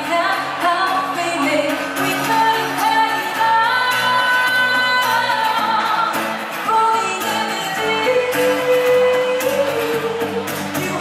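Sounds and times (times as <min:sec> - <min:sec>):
acoustic guitar: 0:00.0 - 0:11.0
woman singing into microphone: 0:00.0 - 0:11.0.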